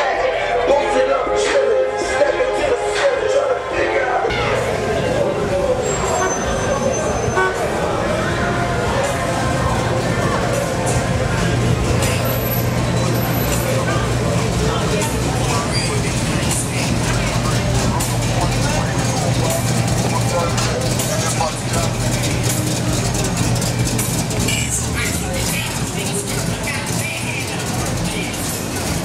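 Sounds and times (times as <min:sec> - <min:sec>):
car traffic engines running: 0:00.0 - 0:29.0
indistinct crowd voices: 0:00.0 - 0:29.0.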